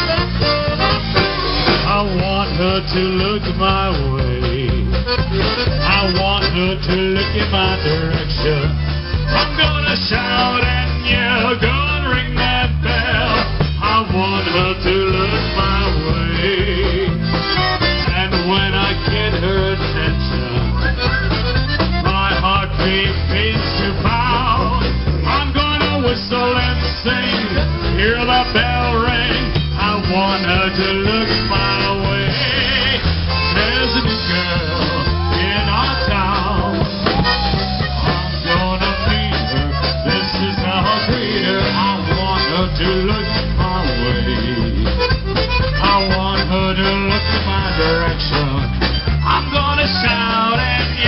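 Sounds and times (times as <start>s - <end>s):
accordion melody: 0.0s - 51.0s
polka band playing: 0.0s - 51.0s.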